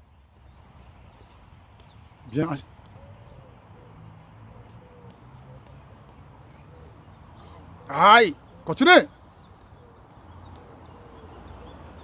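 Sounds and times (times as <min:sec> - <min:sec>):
football dribbled on turf: 0:00.3 - 0:06.6.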